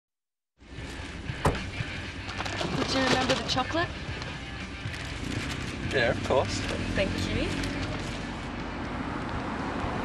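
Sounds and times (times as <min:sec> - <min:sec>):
car cabin road and engine rumble: 0:00.7 - 0:10.0.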